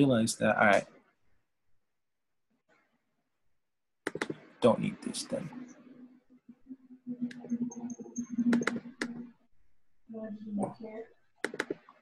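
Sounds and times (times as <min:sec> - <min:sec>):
sharp computer clicks: 0:04.0 - 0:04.5, 0:07.2 - 0:09.3, 0:11.4 - 0:12.0
faint low hum: 0:04.4 - 0:11.2.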